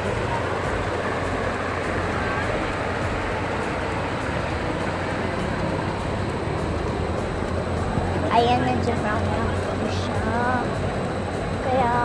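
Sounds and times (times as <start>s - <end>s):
river flowing over rocks: 0.0s - 12.0s.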